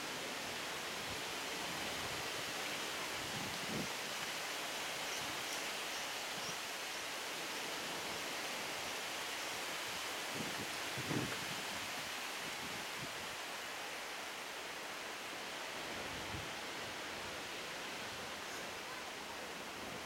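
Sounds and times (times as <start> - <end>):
outdoor background hiss: 0.0 - 20.0.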